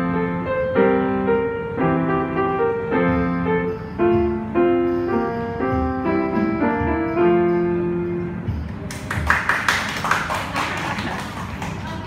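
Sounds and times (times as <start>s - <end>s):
small audience clapping: 8.7s - 12.0s.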